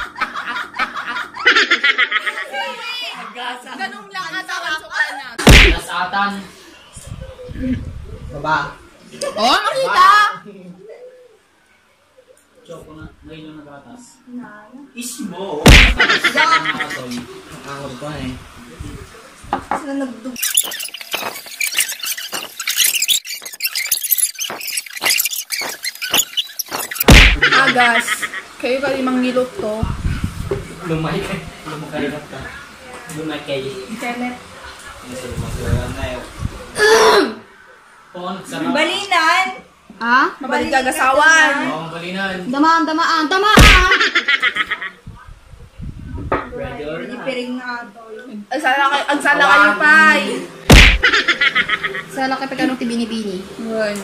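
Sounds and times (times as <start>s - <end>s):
man and woman shrieking laughter: 0.2s - 2.3s, 43.6s - 44.8s, 50.8s - 52.0s.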